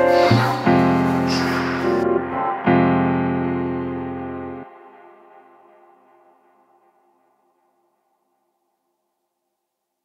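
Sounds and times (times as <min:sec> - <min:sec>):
electric piano chord: 0:00.0 - 0:05.0.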